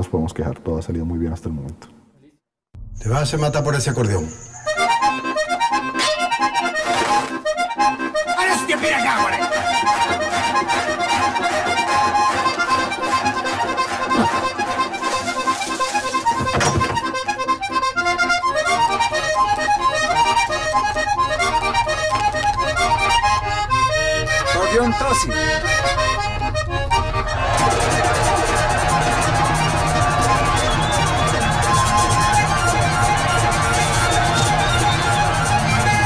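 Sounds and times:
button accordion melody: 0:04.6 - 0:36.0
low rhythmic accompaniment: 0:04.7 - 0:36.0.

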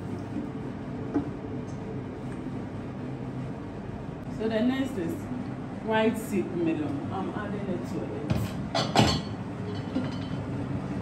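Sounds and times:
low kitchen hum: 0:00.0 - 0:11.0.

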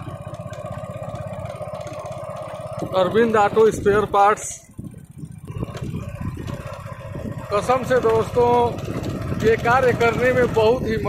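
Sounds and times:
road noise: 0:00.0 - 0:11.0
wind buffeting microphone: 0:02.6 - 0:11.0.

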